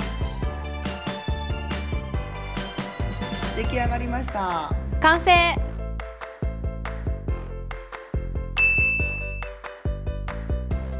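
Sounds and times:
upbeat background music: 0.0s - 10.9s
bright ding: 8.6s - 9.5s.

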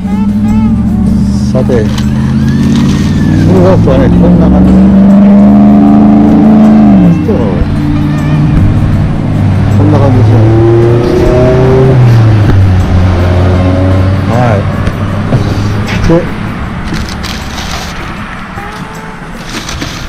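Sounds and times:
motor vehicle engines: 0.0s - 20.0s.

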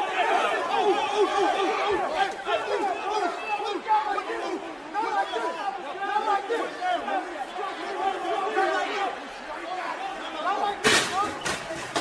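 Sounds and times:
men shouting and talking: 0.0s - 12.0s.

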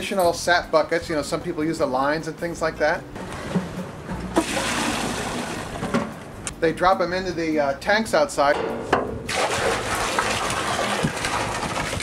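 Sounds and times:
liquid pouring into metal bucket: 4.2s - 6.0s, 9.3s - 12.0s.

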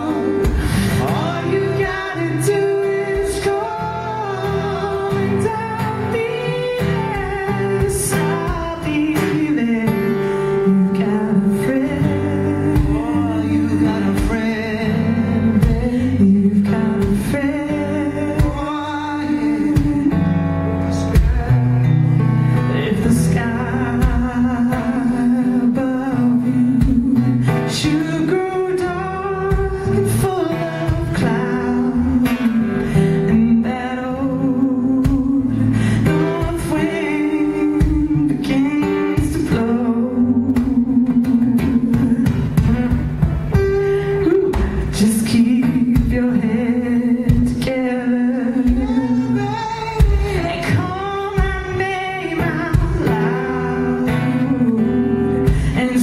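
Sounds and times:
acoustic guitar: 0.0s - 56.0s
woman singing into a microphone: 0.0s - 56.0s.

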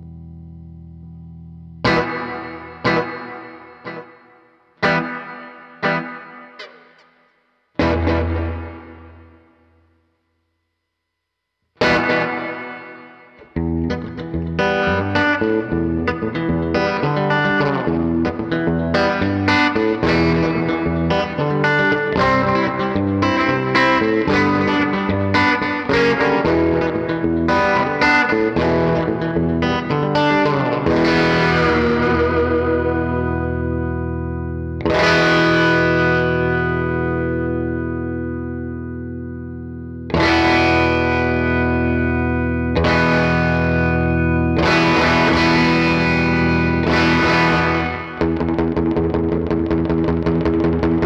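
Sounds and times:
electric guitar with delay: 0.0s - 9.9s, 11.8s - 51.0s.

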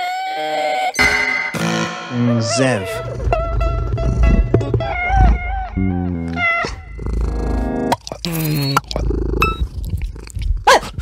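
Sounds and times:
loud falling pitched sound: 1.0s - 4.0s
dense buzzing chord: 1.0s - 4.5s
stepping low notes: 1.0s - 7.9s.

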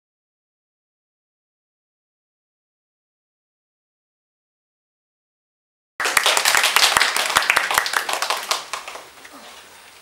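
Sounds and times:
people applauding: 6.0s - 9.2s.

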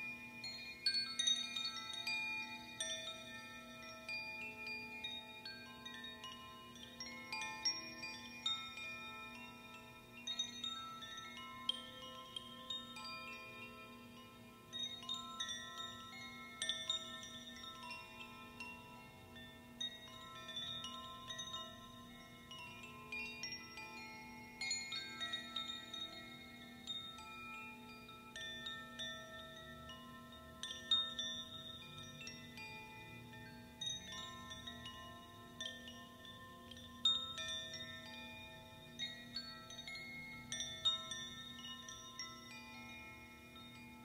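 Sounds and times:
bamboo wind chimes ringing: 0.0s - 44.0s.

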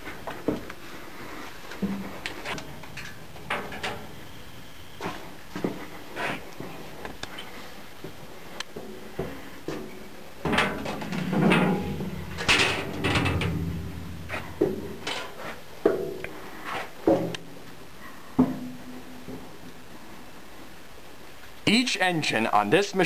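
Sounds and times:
footsteps on steel: 1.5s - 6.4s, 8.0s - 17.4s
sheet-metal doors clanking: 1.8s - 4.8s, 10.5s - 15.4s.

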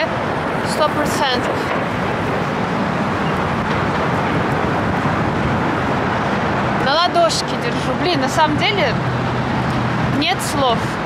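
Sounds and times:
road traffic: 0.0s - 11.0s
wind buffeting microphone: 0.0s - 11.0s.

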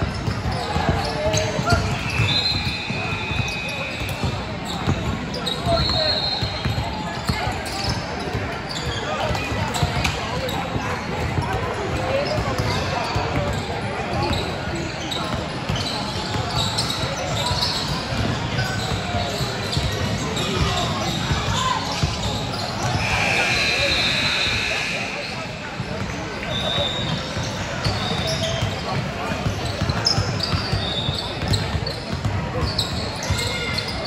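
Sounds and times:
people talking and calling out: 0.0s - 34.0s.

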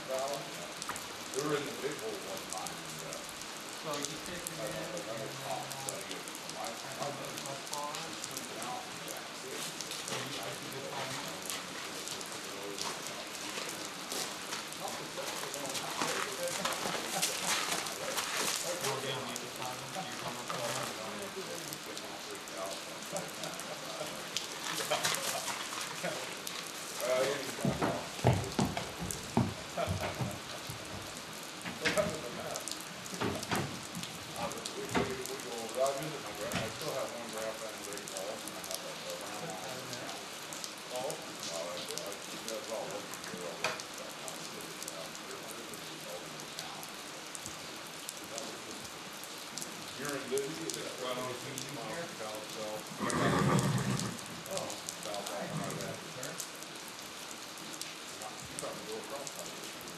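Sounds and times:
steady rain: 0.0s - 59.9s
horse hooves thudding in trailer: 27.6s - 31.1s.

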